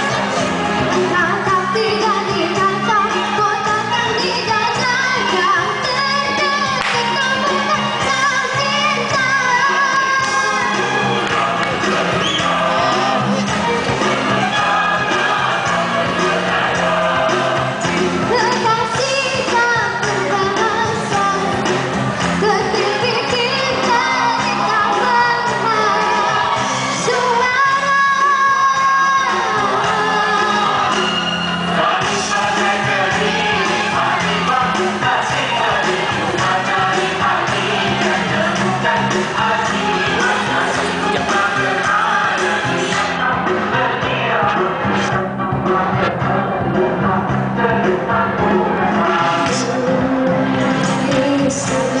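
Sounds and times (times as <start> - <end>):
girl singing pop song: 0.0 - 15.3, 16.0 - 31.1, 31.8 - 52.0
backing music: 0.0 - 52.0
girl singing into a microphone: 1.1 - 10.7, 18.3 - 21.6, 22.4 - 26.0, 27.0 - 30.6.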